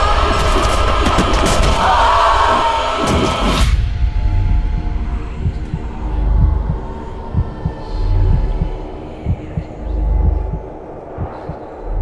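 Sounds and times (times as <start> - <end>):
deep throbbing pulse: 0.0 - 12.0.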